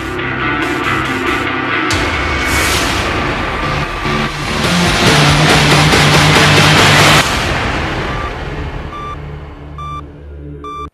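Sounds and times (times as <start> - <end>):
dramatic electronic theme music: 0.0 - 10.9.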